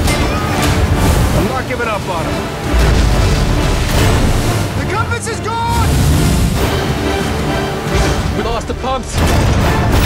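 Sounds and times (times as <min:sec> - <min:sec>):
crashing sea: 0:00.0 - 0:09.4
dramatic music: 0:00.0 - 0:10.0.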